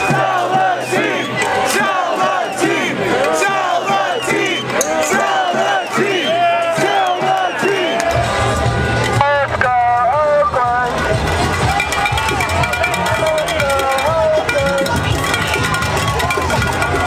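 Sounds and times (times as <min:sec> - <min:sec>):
crowd shouting and cheering: 0:00.0 - 0:17.0.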